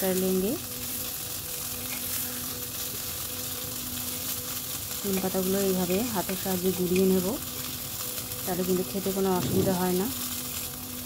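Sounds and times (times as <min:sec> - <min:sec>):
dry leaves crackling crushed by hand: 0:00.0 - 0:11.0
vegetables sizzling in oil: 0:00.0 - 0:11.0.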